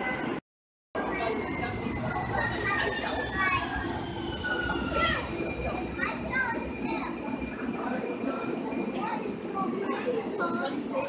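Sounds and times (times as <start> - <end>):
train rumbling: 1.0 - 11.0.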